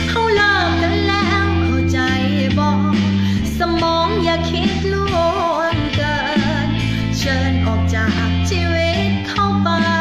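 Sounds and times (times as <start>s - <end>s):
backing track with guitar: 0.0s - 10.0s
woman singing: 0.0s - 10.0s.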